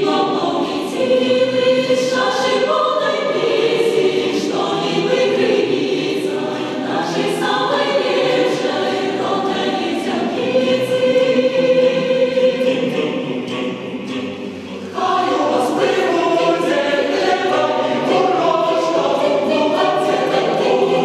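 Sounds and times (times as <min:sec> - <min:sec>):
mixed choir singing unaccompanied: 0:00.0 - 0:21.0.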